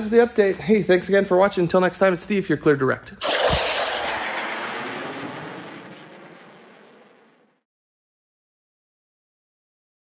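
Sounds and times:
rushing whoosh: 3.2 - 6.1.

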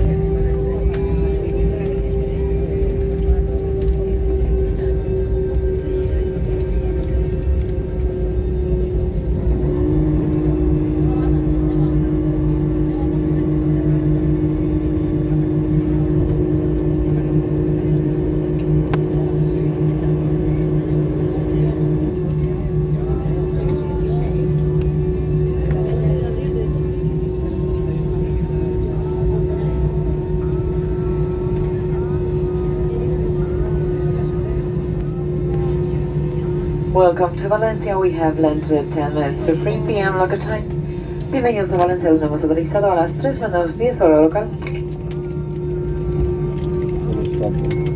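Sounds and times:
jet engine whine: 0.0 - 47.9
low engine rumble: 0.0 - 47.9.

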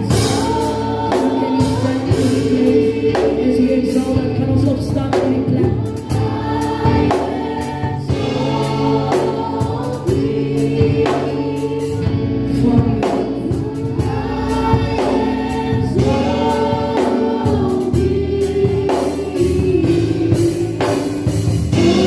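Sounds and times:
gospel choir singing: 0.0 - 22.0.

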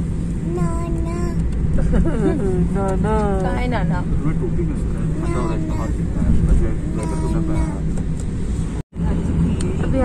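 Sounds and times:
car road and engine rumble: 0.0 - 10.0
faint voice: 5.1 - 7.8.

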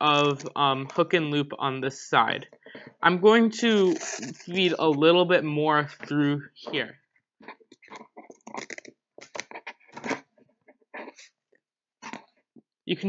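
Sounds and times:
hook-and-loop strap rasping: 3.6 - 4.8.

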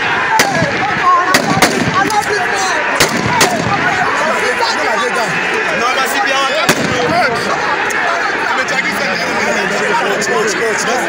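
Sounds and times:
crowd shouting and yelling: 0.0 - 11.0
rifle shots: 0.4 - 2.2, 3.0 - 3.8, 6.7 - 7.1.

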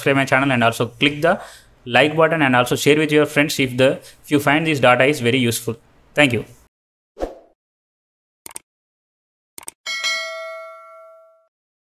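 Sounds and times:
notification bell ding: 9.9 - 11.5.

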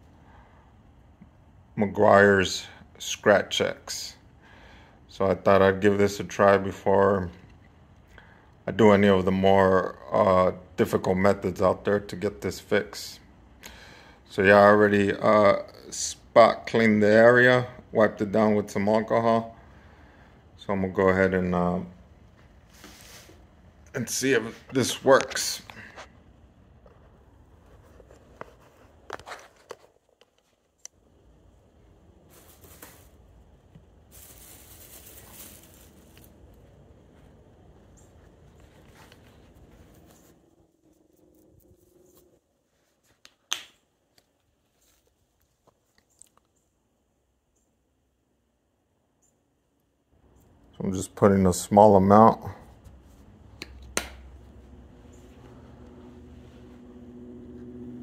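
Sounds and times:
low mechanical hum: 0.0 - 58.0
rustling: 31.5 - 43.5, 44.1 - 46.5.

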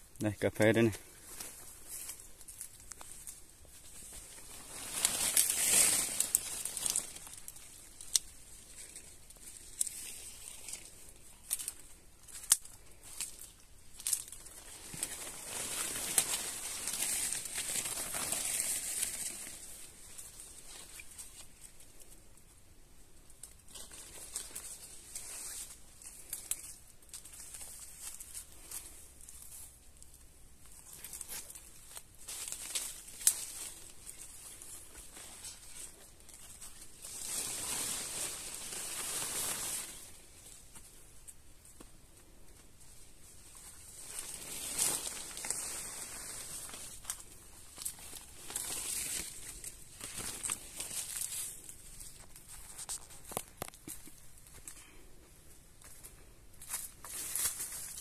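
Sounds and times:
leaves rustling and brushing: 0.6 - 22.4, 23.4 - 55.0, 55.8 - 58.0.

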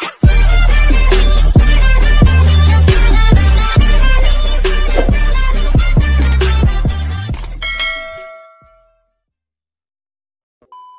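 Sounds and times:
bell-like music chord ringing: 7.6 - 9.0.

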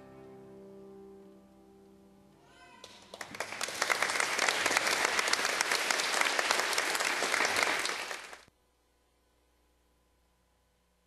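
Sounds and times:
audience applauding: 2.8 - 8.5.

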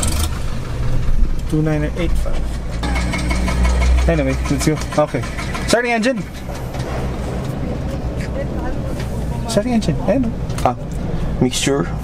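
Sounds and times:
low engine drone: 0.0 - 11.5.

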